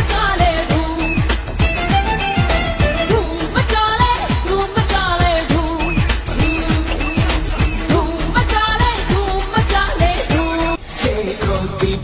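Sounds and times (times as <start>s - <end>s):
electronic dance beat: 0.1s - 12.0s
person singing: 2.9s - 12.0s.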